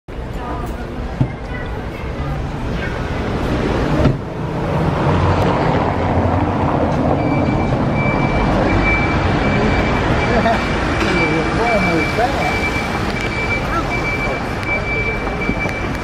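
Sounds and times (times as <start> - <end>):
crowd chatter: 0.1 - 16.0
street traffic: 0.1 - 16.0.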